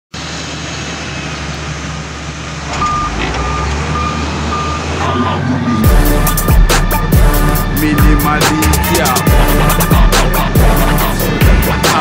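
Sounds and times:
heavy vehicle engine rumbling: 0:00.1 - 0:12.0
reversing alarm beeping: 0:02.8 - 0:12.0
music with a beat: 0:05.8 - 0:12.0.

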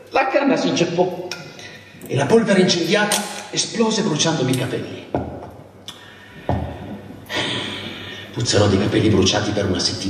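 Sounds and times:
steady hiss: 0:05.9 - 0:10.0.

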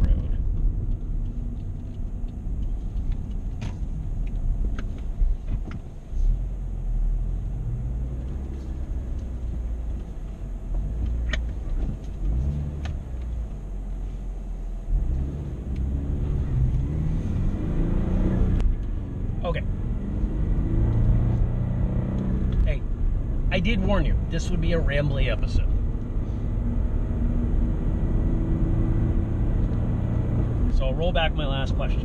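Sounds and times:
car engine accelerating: 0:00.0 - 0:32.0
road rumble: 0:00.0 - 0:32.0.

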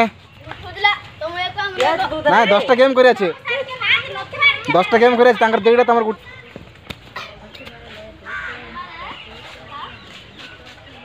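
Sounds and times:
children calling out: 0:03.4 - 0:07.5, 0:08.2 - 0:10.0.

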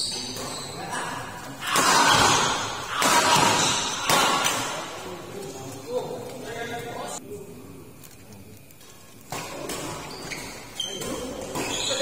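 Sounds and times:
voices echoing in sports hall: 0:00.0 - 0:12.0.

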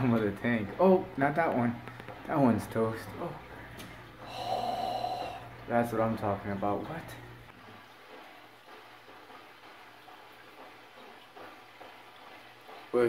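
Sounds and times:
aquarium filter humming: 0:00.0 - 0:13.0
moving water wash: 0:00.0 - 0:13.0.

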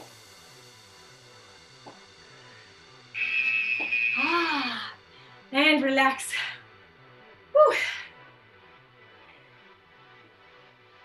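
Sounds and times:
workout music with bass line: 0:00.0 - 0:11.0
loud harsh buzzer: 0:03.2 - 0:04.6.

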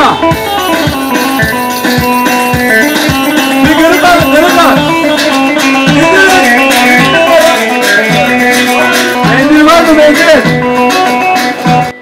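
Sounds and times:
dance music on arranger keyboard: 0:00.0 - 0:12.0.

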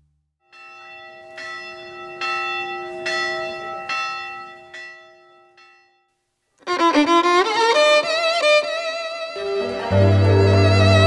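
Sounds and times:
bell tolling: 0:00.5 - 0:06.1.

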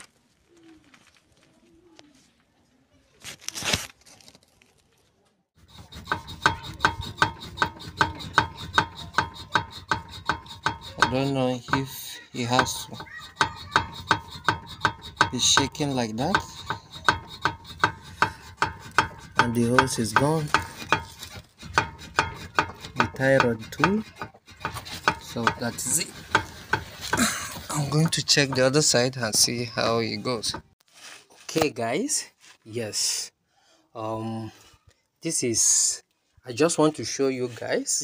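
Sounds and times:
suspension joints knocking: 0:05.6 - 0:30.8.

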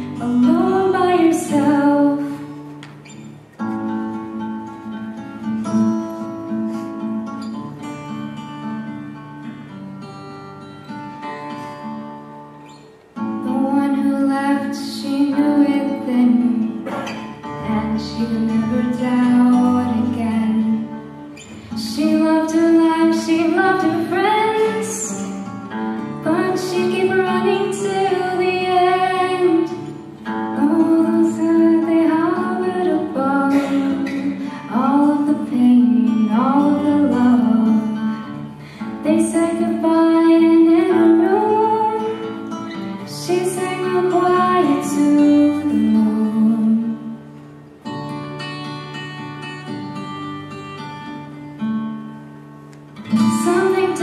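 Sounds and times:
woman singing: 0:00.0 - 0:02.8, 0:13.3 - 0:47.3, 0:53.0 - 0:54.0
acoustic guitar: 0:00.0 - 0:54.0.

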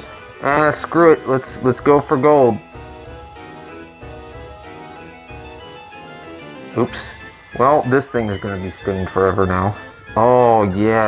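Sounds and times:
plucked keyboard melody: 0:00.0 - 0:11.0
man speaking: 0:00.3 - 0:02.7, 0:06.7 - 0:11.0.

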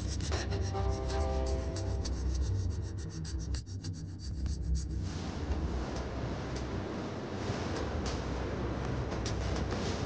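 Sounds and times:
dry rasping tick rhythm: 0:00.0 - 0:05.0
low steady hum: 0:00.0 - 0:10.0.

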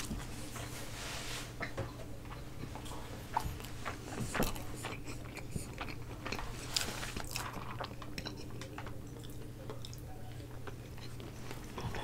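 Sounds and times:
steady low hum: 0:00.0 - 0:12.0
chewing food close up: 0:01.6 - 0:12.0.

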